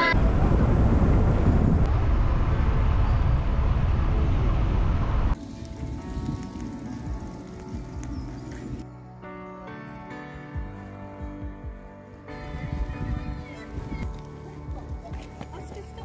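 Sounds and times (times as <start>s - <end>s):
wind and road rumble: 0.0s - 8.9s, 12.3s - 16.0s
soft music with sustained notes: 5.3s - 16.0s.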